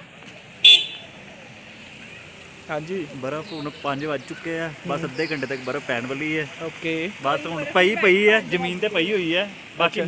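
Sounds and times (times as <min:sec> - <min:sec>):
low street background: 0:00.0 - 0:10.0
vehicle horn toot: 0:00.6 - 0:01.0.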